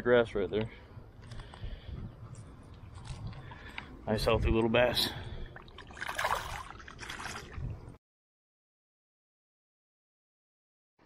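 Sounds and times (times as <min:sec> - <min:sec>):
fish splashing in water: 0:05.6 - 0:07.6.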